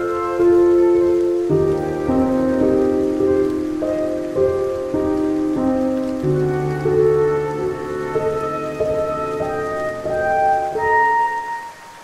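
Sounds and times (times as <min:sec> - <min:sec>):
slow calm music: 0:00.0 - 0:12.0
steady rainfall: 0:00.0 - 0:12.0.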